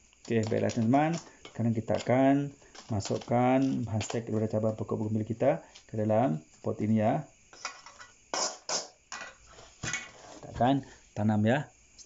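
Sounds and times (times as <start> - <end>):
metal spoon scraping soil: 0.2 - 4.7.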